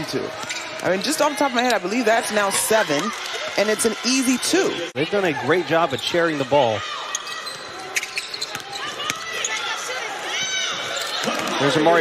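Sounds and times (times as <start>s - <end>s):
sneakers squeaking: 0.0s - 4.5s, 5.6s - 12.0s.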